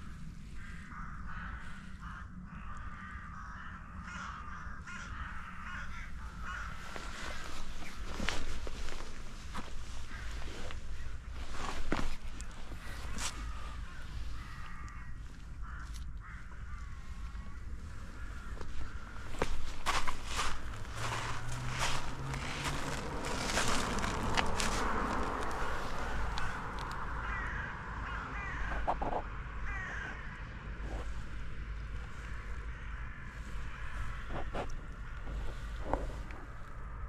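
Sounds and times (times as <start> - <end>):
birds cawing: 0.0 - 37.0
low steady rumble: 0.0 - 37.0
footsteps on gravel and stones: 5.7 - 14.8, 18.1 - 27.2, 33.6 - 36.6.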